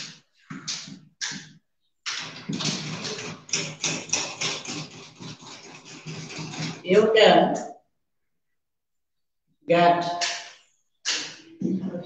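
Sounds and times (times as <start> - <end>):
marker scratching on whiteboard: 0.0 - 7.1, 10.1 - 12.0.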